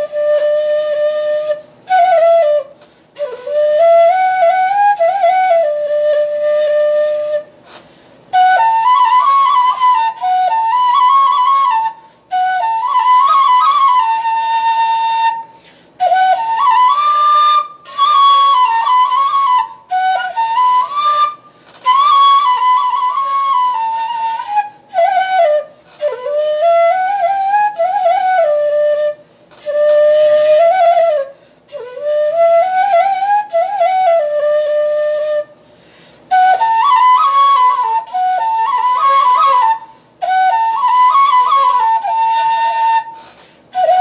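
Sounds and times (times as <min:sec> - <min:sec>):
bamboo flute melody: 0:00.0 - 0:35.6, 0:36.2 - 0:44.0.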